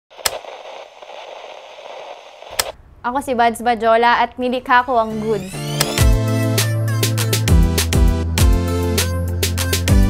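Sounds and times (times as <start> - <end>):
crackling static hiss: 0.1 - 3.8
sharp click: 0.2 - 0.6, 2.5 - 2.8, 5.7 - 6.1.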